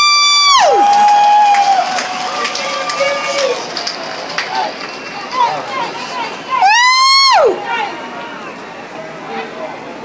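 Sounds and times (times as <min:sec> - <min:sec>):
faint crowd voices: 0:00.0 - 0:10.0.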